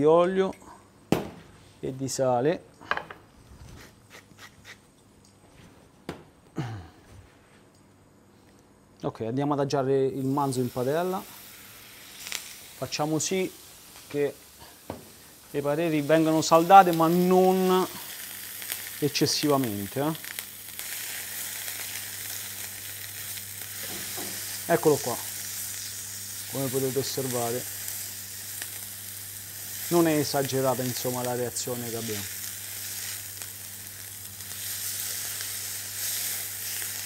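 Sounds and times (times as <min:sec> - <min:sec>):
steak sizzling in a frying pan: 0:10.2 - 0:37.0.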